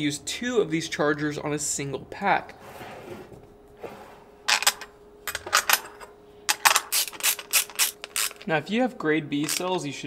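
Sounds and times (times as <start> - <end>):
metallic clicking and clinking: 4.5 - 8.5, 9.4 - 9.7
ratcheting driver: 6.5 - 8.4, 9.4 - 9.6.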